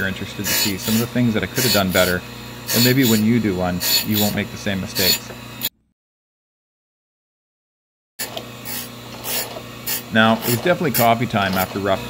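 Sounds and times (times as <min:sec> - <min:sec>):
grinding wheel rasping on steel: 0:00.0 - 0:05.7, 0:08.2 - 0:12.0
grinder motor hum: 0:00.0 - 0:05.9, 0:08.2 - 0:12.0.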